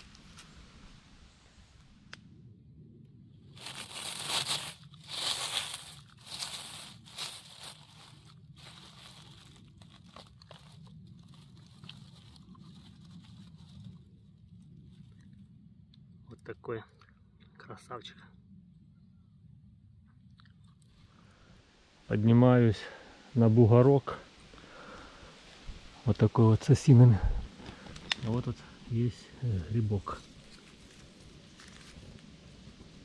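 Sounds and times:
dry leaves crunching underfoot: 3.4 - 15.2, 30.0 - 33.0.

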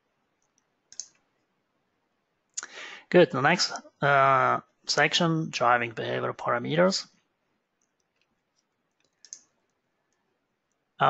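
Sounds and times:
computer mouse click: 0.4 - 1.2, 8.9 - 9.5.

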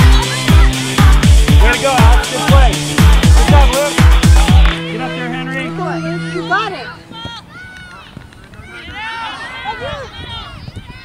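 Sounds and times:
children shouting: 5.8 - 11.0.

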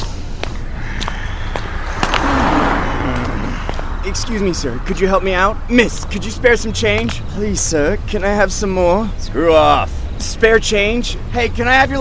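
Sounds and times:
low traffic rumble: 0.0 - 12.0.

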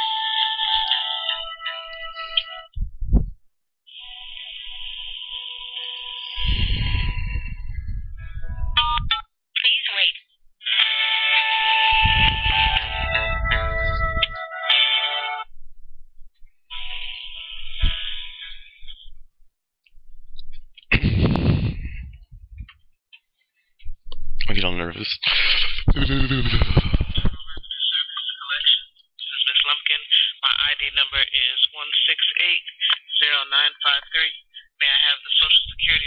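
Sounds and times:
telephone hold music: 0.0 - 2.8, 3.9 - 9.2, 10.6 - 15.5, 16.7 - 19.0.

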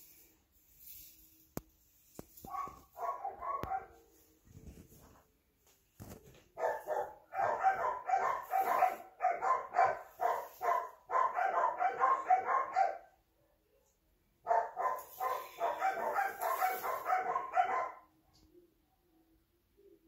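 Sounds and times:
dog barking rapidly: 2.5 - 4.0, 6.6 - 13.1, 14.5 - 18.0.

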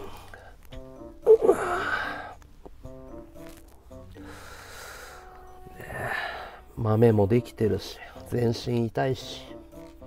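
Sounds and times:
man breathing through nose: 0.0 - 0.7, 1.6 - 2.4, 4.2 - 6.7.

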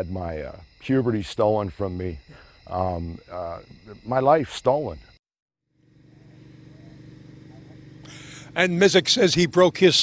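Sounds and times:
low mechanical hum: 5.8 - 10.0.

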